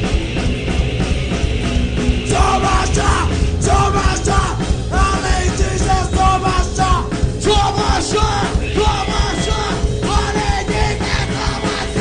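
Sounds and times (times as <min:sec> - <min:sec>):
punk band playing live: 0:00.0 - 0:12.0
shouted vocals: 0:02.3 - 0:12.0.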